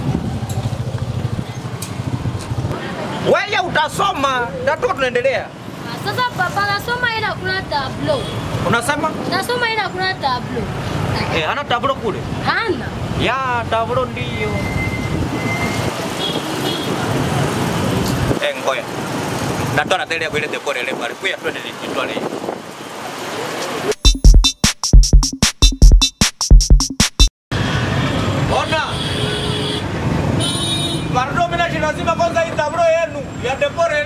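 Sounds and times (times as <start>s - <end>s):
vehicles passing: 0.0s - 24.0s, 27.5s - 34.0s.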